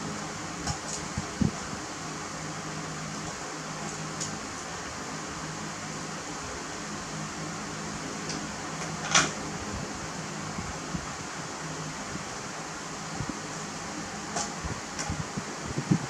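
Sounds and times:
fan humming and hissing: 0:00.0 - 0:16.0.

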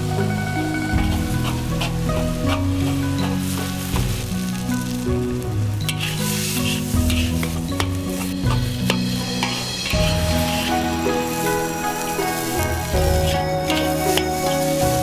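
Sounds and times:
background music with low notes: 0:00.0 - 0:15.0
peppers sizzling in a wok: 0:00.0 - 0:15.0
metal spatula scraping a pan: 0:01.0 - 0:04.2, 0:05.8 - 0:11.0, 0:13.0 - 0:15.0.

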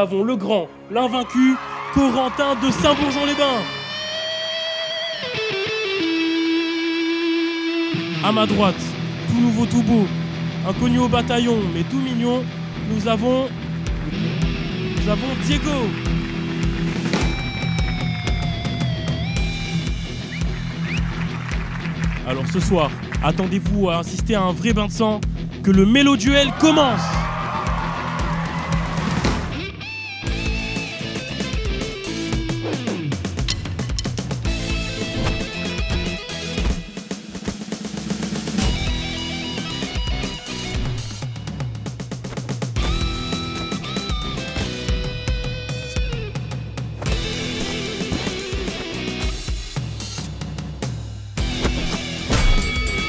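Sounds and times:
rock music: 0:00.0 - 0:53.0
held guitar notes: 0:03.7 - 0:09.3
drum kit beat: 0:13.8 - 0:26.4, 0:30.3 - 0:53.0.

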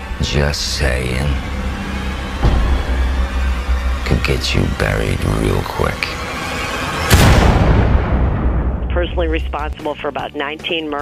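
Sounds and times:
low musical hit: 0:00.0 - 0:09.8
deep low drone music: 0:00.0 - 0:10.2.

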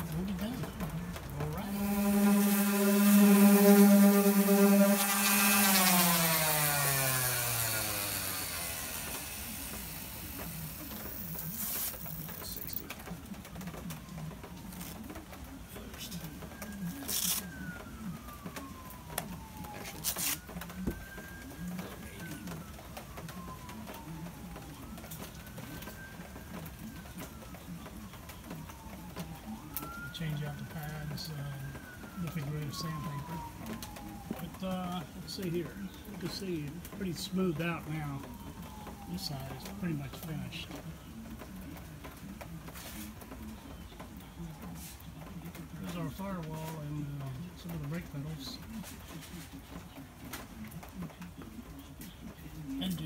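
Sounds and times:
faint siren: 0:00.0 - 0:53.0
orbital sander whining: 0:01.4 - 0:12.1.

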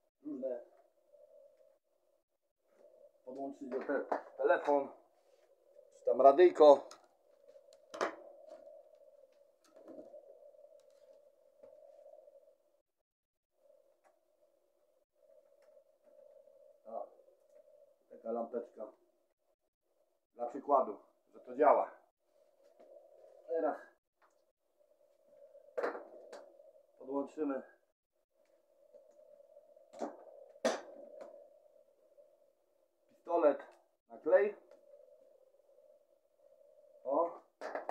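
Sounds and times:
faint steady hum: 0:00.0 - 0:12.8, 0:13.6 - 0:37.6.

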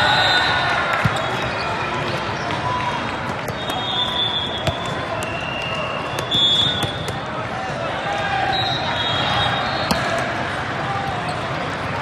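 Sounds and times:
murmur of voices: 0:00.0 - 0:12.0
volleyballs hit and bouncing: 0:00.4 - 0:07.9, 0:09.8 - 0:12.0.

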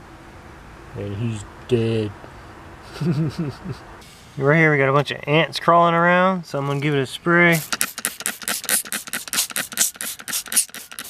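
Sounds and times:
spray bottle squirting: 0:07.5 - 0:11.0.

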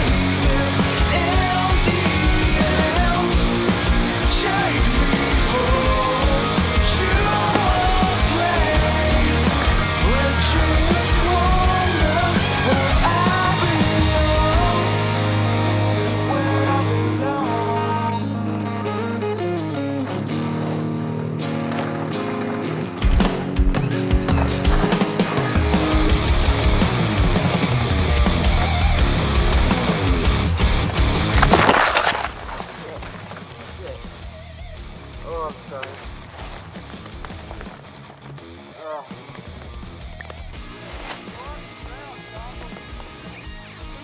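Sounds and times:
bike crashing on gravel: 0:00.0 - 0:19.2, 0:20.0 - 0:38.6, 0:39.2 - 0:43.0
rock song with heavy beat: 0:00.0 - 0:44.0.

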